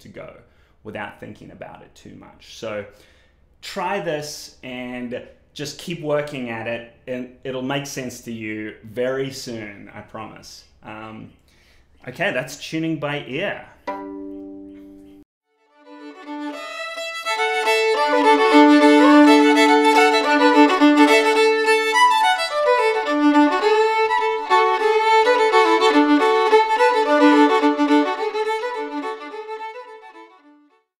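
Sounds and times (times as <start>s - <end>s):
solo fiddle playing lively tune: 15.6s - 30.8s.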